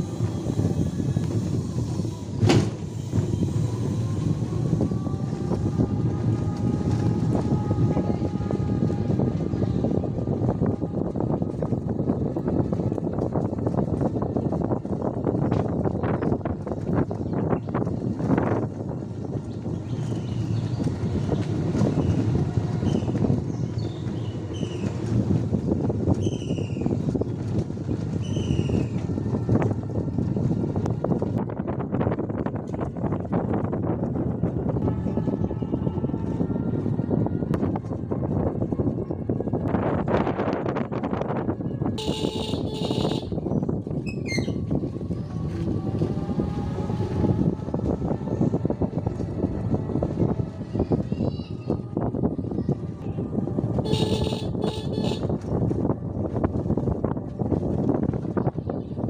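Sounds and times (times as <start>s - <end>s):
wind on microphone: 0.0s - 59.0s.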